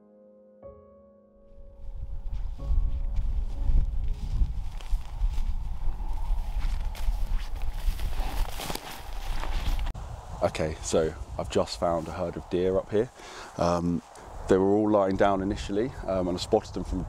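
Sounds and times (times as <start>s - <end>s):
piano music: 0.0s - 4.6s
wind rumble on microphone: 1.7s - 17.0s
footsteps through heather and grass: 1.8s - 10.0s.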